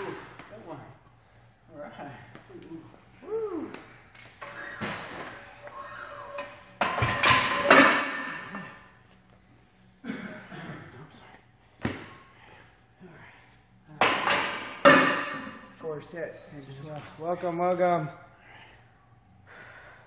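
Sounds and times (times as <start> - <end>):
metal weight plates clanking: 4.4 - 8.8.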